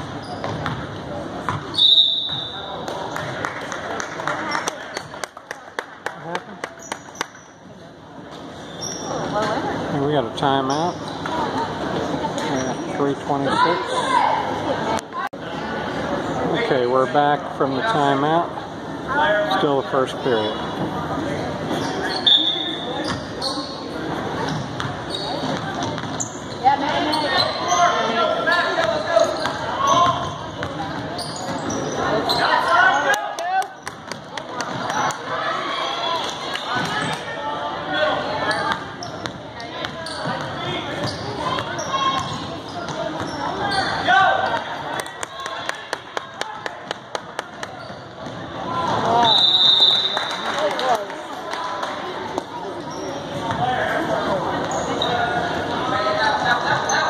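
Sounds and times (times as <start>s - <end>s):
chatter and calls of people: 0.0s - 57.0s.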